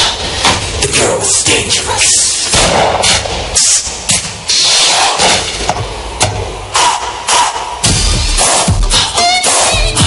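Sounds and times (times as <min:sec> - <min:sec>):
noisy electronic bursts and hits: 0:02.2 - 0:09.0.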